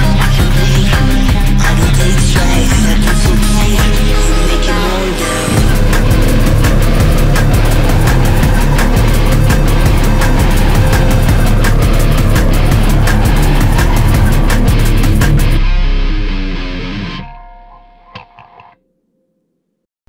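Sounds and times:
instrumental rock music: 0:00.0 - 0:18.8.

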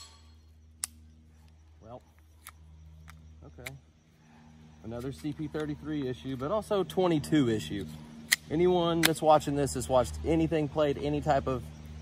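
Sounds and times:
pistol click: 0:08.2 - 0:09.2.

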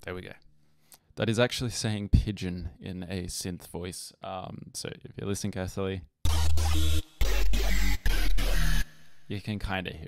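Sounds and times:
buzzy synth voice notes: 0:06.3 - 0:09.4.

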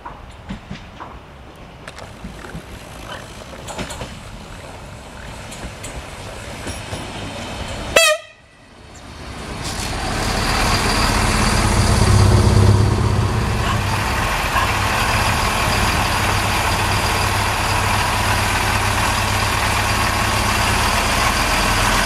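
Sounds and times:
train wheel rumble: 0:00.0 - 0:22.0
train horn toot: 0:07.9 - 0:08.7
diesel engine hum: 0:08.8 - 0:22.0.

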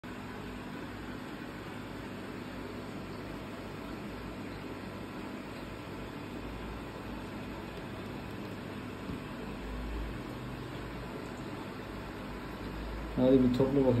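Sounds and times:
mechanical hum and hiss: 0:00.0 - 0:14.0.

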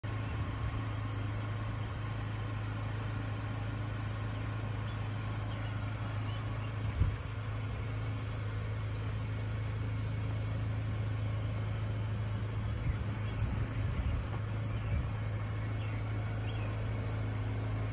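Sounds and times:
engine idling with low hum: 0:00.0 - 0:17.9.

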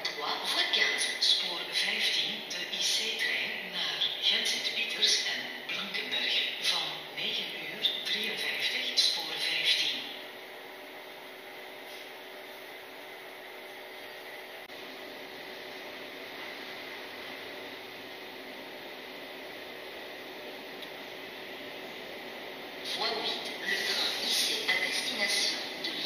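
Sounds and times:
station platform hum and hiss: 0:00.0 - 0:26.0.

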